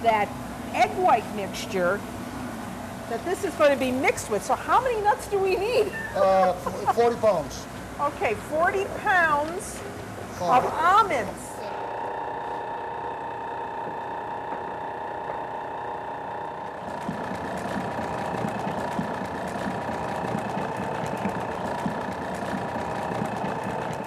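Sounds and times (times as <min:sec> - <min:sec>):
stand mixer motor hum: 0:11.4 - 0:24.0.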